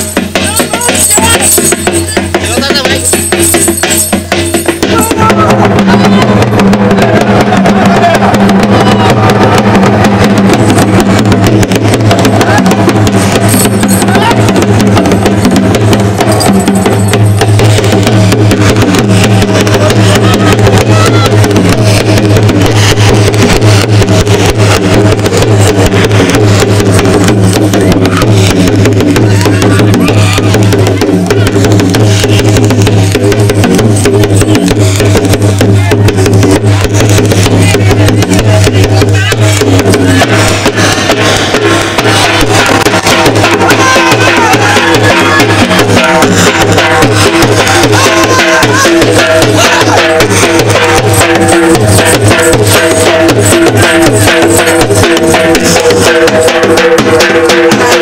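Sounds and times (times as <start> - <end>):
dhol drums fast rhythm: 0.0 - 58.0.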